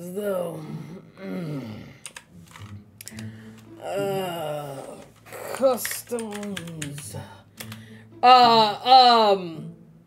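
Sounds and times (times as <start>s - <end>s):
keyboard key clicks: 5.6s - 7.0s.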